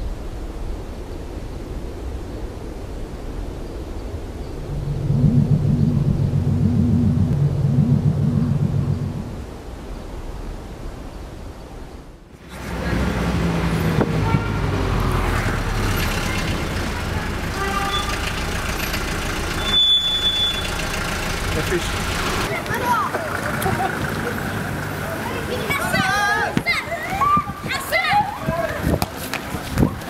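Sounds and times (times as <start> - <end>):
low warbling tone: 4.5 - 9.9
street traffic: 12.3 - 30.0
car horn toots: 14.0 - 14.9, 16.0 - 21.0.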